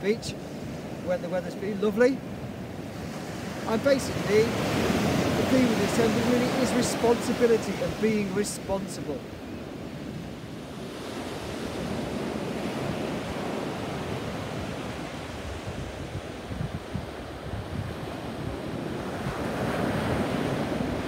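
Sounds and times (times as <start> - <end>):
waves breaking on sandy beach: 0.0 - 21.0
wind buffeting microphone: 9.4 - 21.0.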